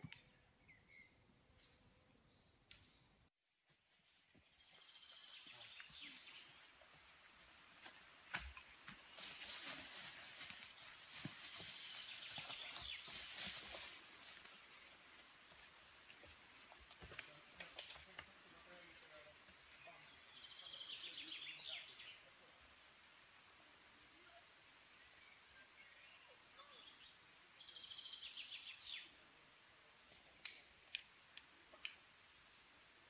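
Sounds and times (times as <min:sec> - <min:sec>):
trilled birdsong: 0:00.0 - 0:03.2, 0:04.3 - 0:06.7, 0:10.6 - 0:13.9, 0:18.0 - 0:22.3, 0:24.2 - 0:29.2
soft rustling: 0:07.8 - 0:16.2.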